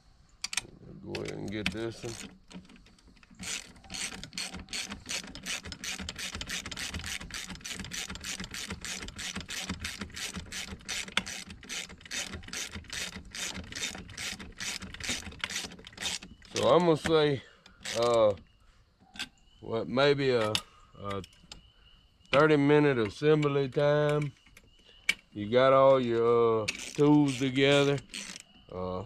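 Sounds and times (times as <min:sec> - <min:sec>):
ratchet wrench clicking: 0:01.2 - 0:17.1, 0:17.7 - 0:18.4, 0:26.7 - 0:28.5.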